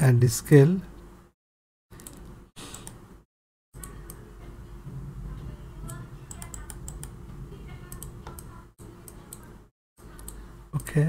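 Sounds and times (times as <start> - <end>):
keyboard and mouse clicks: 1.9 - 3.0, 5.8 - 7.2, 7.8 - 9.5, 10.1 - 10.9
low steady hum: 3.8 - 11.0.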